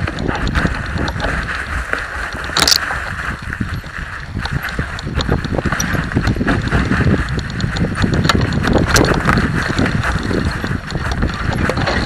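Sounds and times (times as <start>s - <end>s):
bike knocking and rattling: 0.0s - 12.0s
tyres rolling through leaves: 0.0s - 12.0s.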